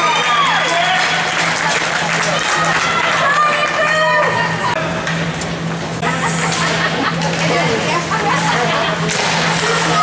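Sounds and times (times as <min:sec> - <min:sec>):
low arena hum: 0:00.0 - 0:10.0
hockey sticks on ice: 0:09.1 - 0:10.0.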